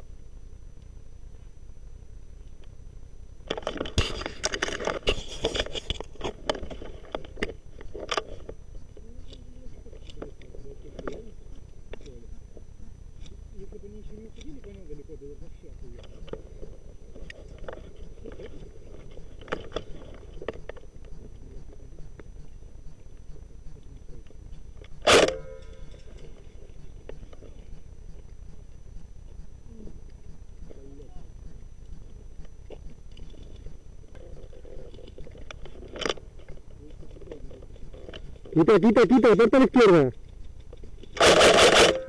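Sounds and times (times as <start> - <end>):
rustling and crackling: 0.7 - 39.0
clicks and scrapes: 3.5 - 8.6.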